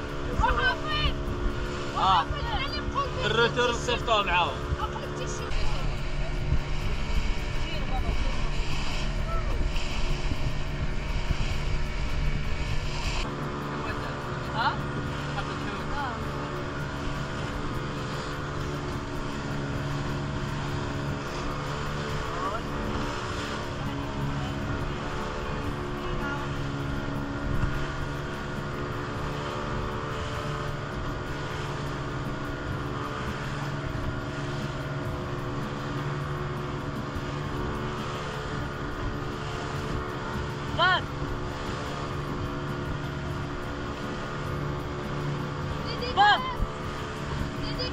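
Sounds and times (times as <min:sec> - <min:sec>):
engine drone: 0:00.0 - 0:47.9
loud rumble: 0:00.0 - 0:47.9
people talking: 0:00.2 - 0:01.2, 0:02.0 - 0:06.4, 0:45.8 - 0:46.7, 0:47.5 - 0:47.9.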